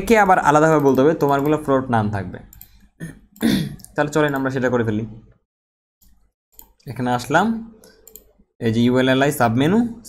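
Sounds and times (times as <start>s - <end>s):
man talking: 0.0s - 2.5s, 6.8s - 7.8s, 8.6s - 10.0s
man clearing his throat: 3.0s - 3.8s.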